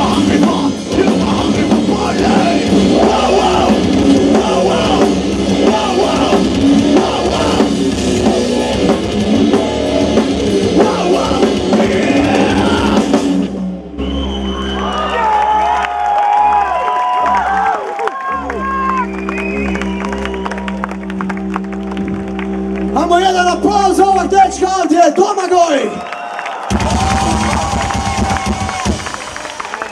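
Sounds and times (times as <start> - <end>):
heavy metal band playing live: 0.0 - 13.9, 26.7 - 29.9
crowd shouting and cheering: 0.0 - 29.9
singer shouting: 10.7 - 13.1, 16.6 - 19.1
crowd cheering: 13.9 - 23.1, 25.1 - 29.9.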